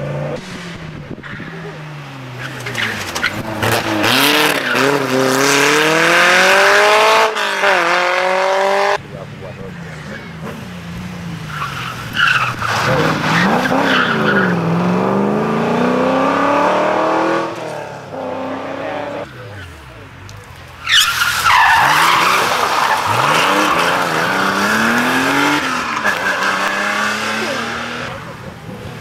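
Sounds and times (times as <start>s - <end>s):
rally cars passing at speed: 0.0s - 29.0s.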